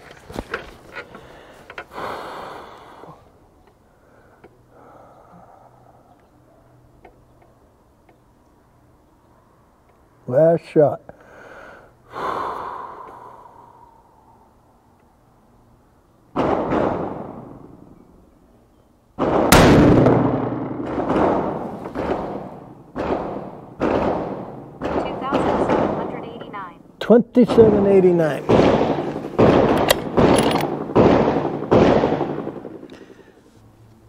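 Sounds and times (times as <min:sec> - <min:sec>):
rifle shots echoing: 0:16.4 - 0:17.8, 0:19.2 - 0:26.7, 0:27.4 - 0:32.9.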